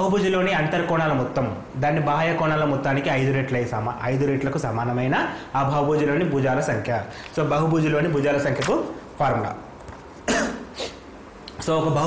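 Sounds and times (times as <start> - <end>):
breath: 7.1 - 7.3
man coughing: 10.2 - 11.0
man speaking: 11.6 - 12.0.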